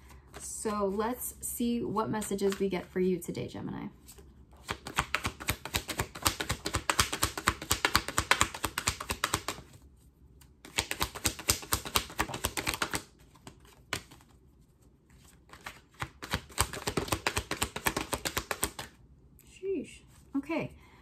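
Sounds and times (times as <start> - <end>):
cards shuffling: 2.4 - 2.7, 4.1 - 9.8, 10.4 - 19.0.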